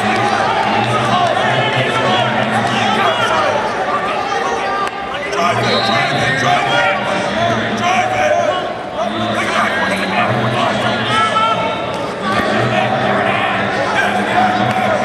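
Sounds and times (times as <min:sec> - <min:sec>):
crowd calling out in hall: 0:00.0 - 0:15.0.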